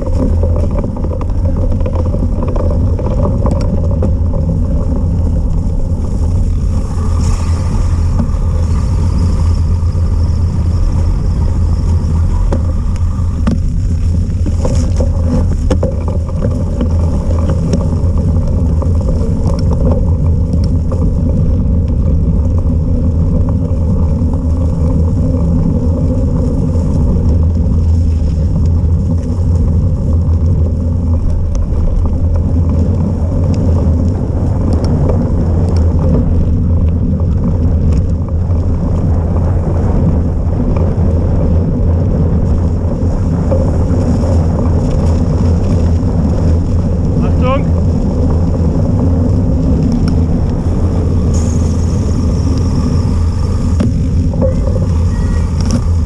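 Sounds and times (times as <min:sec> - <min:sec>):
wind and rolling noise: 0:00.0 - 0:56.0.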